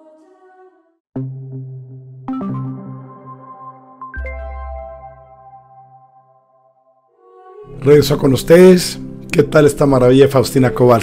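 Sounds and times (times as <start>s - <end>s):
electronic jingle chord: 1.2s - 8.2s.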